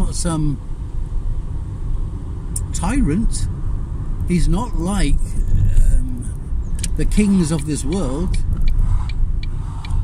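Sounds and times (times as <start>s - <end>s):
car road and engine rumble: 0.0s - 10.0s
sharp clicks: 6.7s - 10.0s.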